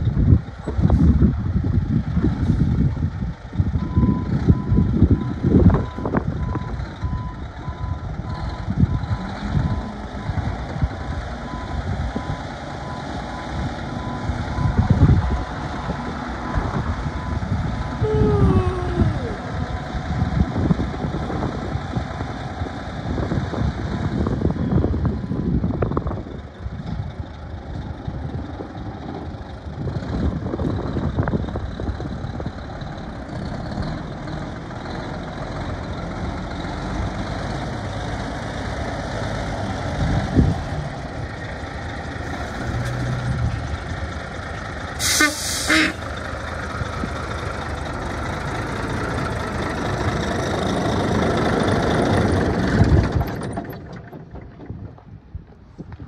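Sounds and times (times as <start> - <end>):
truck diesel engine running: 0.0 - 55.5
tires on gravel: 19.0 - 56.0
air brake hiss: 45.0 - 45.9.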